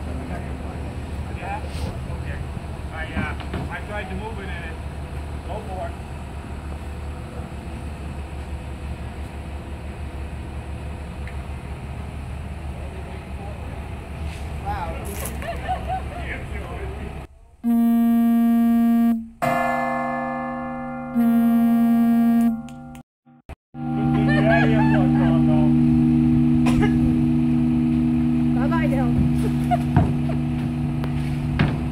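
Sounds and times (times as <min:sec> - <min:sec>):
low engine rumble: 0:00.0 - 0:19.4, 0:23.8 - 0:31.9
large church bell ringing: 0:19.4 - 0:21.2.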